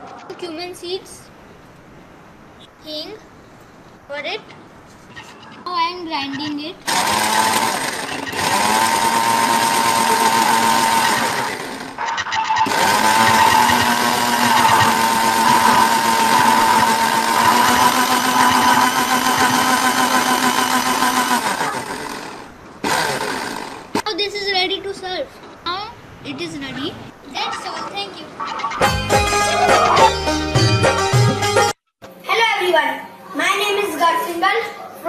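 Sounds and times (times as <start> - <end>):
mixer grinder running: 6.9 - 12.0, 12.6 - 24.0.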